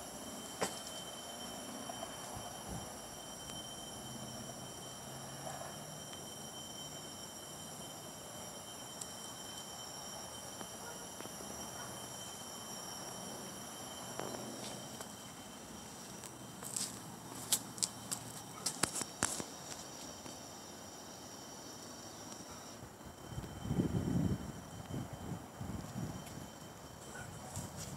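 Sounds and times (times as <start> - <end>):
faint outdoor hiss: 0.0 - 27.9
thin high whine: 0.0 - 27.9.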